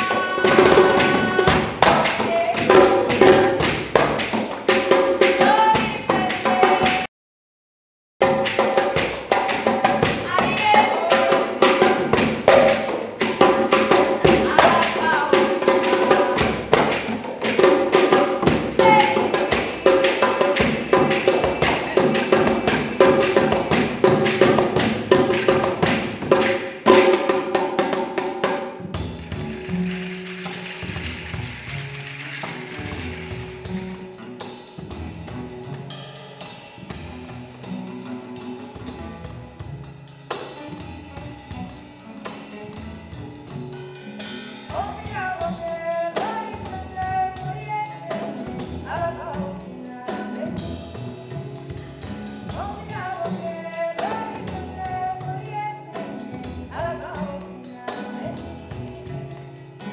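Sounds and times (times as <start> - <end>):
hand drums fast rhythm: 0.0 - 7.1, 8.2 - 59.9
plucked double bass: 0.0 - 7.1, 8.2 - 28.2, 28.8 - 59.9.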